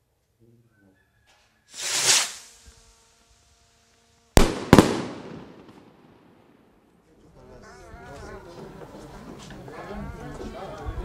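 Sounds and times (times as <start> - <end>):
firework rockets bursting: 1.7 - 6.8.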